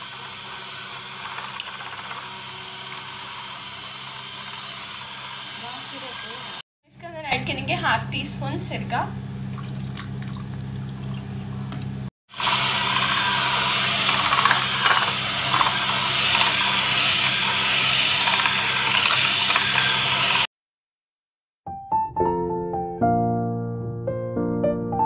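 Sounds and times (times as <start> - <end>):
electric hand mixer whirring: 0.0 - 6.6, 12.3 - 20.5
soft piano music: 21.7 - 25.0.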